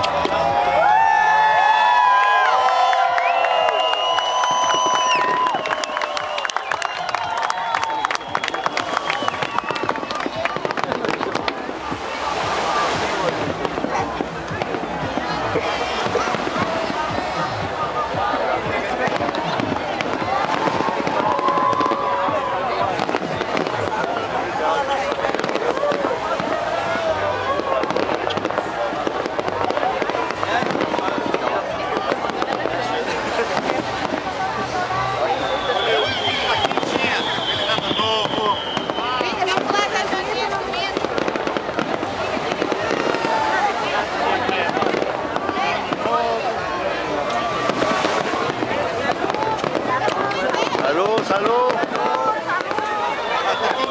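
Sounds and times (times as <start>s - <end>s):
fireworks popping and crackling: 0.0s - 53.9s
people talking: 1.8s - 53.9s.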